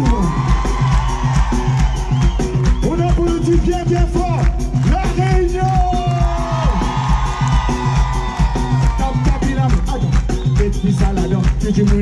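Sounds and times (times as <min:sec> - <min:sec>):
audience cheering and whooping: 0:00.0 - 0:11.9
live band playing: 0:00.0 - 0:12.0.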